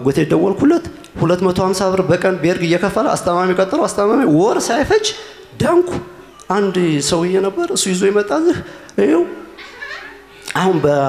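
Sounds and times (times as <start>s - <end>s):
man speaking into a microphone: 0.0s - 9.5s, 10.4s - 11.0s.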